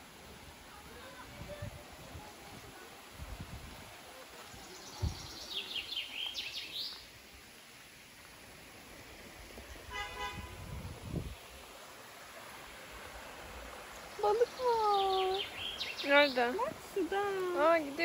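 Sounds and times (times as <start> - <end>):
small bird chirping: 13.9 - 16.6.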